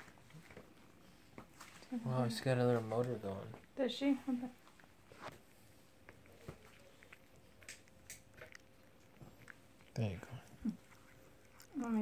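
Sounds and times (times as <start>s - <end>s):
cat chewing and licking: 0.0s - 1.8s, 4.6s - 12.0s.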